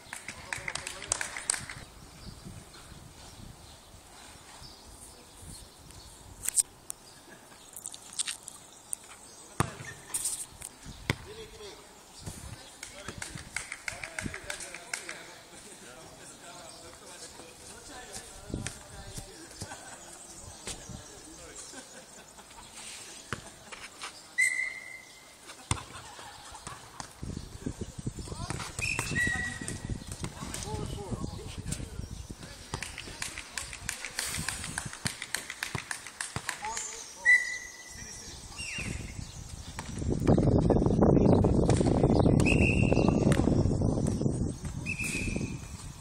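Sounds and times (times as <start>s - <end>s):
footsteps on clay court: 16.9s - 19.9s.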